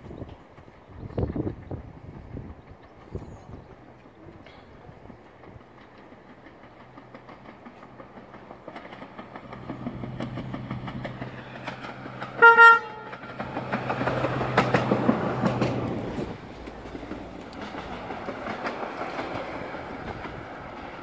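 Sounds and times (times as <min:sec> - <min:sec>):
diesel railcar engine: 0:00.0 - 0:21.0
wheels clicking over rail joints: 0:00.1 - 0:21.0
train horn blasts: 0:12.3 - 0:13.3.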